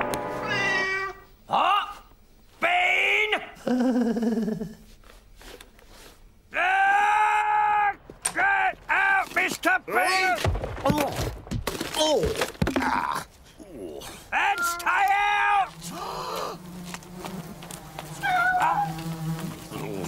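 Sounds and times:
cartoon cat meowing and yowling: 0:00.4 - 0:01.2, 0:14.4 - 0:15.4, 0:18.2 - 0:19.0.

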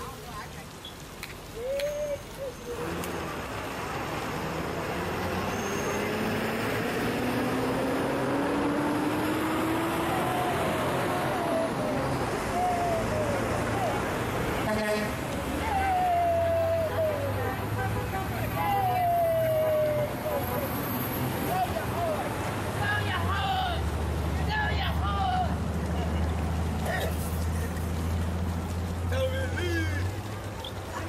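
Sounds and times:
outdoor traffic noise: 0:00.0 - 0:31.0
people calling out: 0:01.5 - 0:03.0, 0:09.9 - 0:28.1, 0:29.0 - 0:31.0
vehicle accelerating past: 0:02.6 - 0:14.7.

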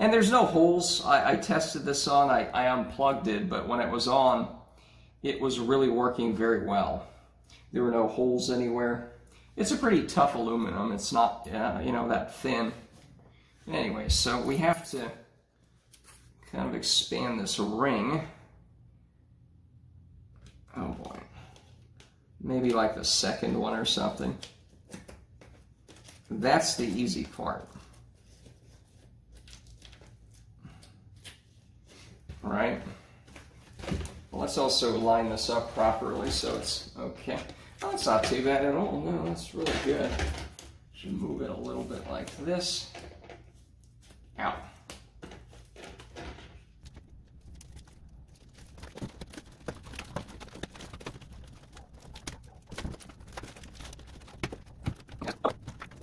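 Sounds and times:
foil duct crinkling: 0:46.6 - 0:56.0.

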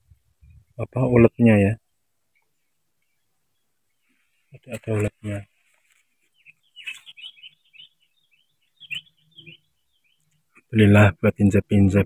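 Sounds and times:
small bird chirping: 0:01.8 - 0:10.9.

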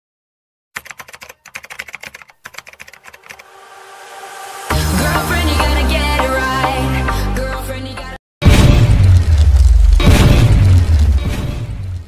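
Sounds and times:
keyboard typing: 0:00.8 - 0:03.5
rising hiss: 0:03.4 - 0:05.6.

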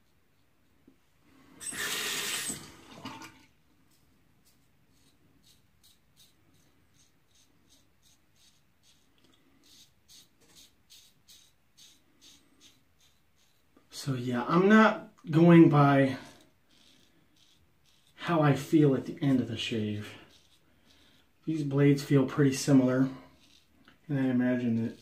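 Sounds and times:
running water: 0:01.6 - 0:03.5
razor scraping stubble: 0:04.4 - 0:25.0.

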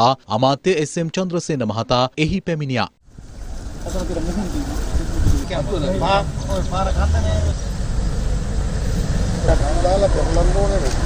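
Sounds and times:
men talking outdoors: 0:00.0 - 0:11.0.

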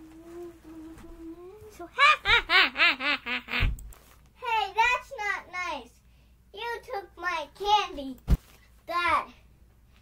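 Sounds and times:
child's voice: 0:00.0 - 0:02.2, 0:04.4 - 0:08.2, 0:08.8 - 0:09.4
child laughing hard: 0:01.9 - 0:03.8.

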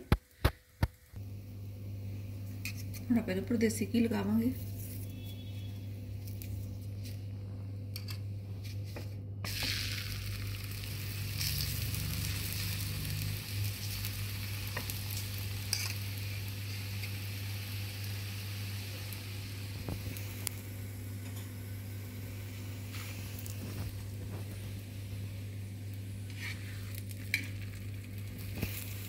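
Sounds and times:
flatbread sizzling on a hot pan: 0:08.9 - 0:20.6, 0:21.8 - 0:29.0.

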